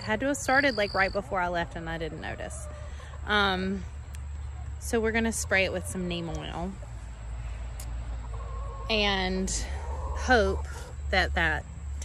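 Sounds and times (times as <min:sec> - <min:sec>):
chickens clucking: 0:00.0 - 0:11.9.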